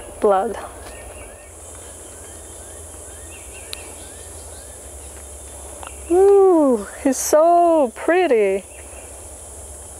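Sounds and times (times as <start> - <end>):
insects droning: 0.0 - 9.9.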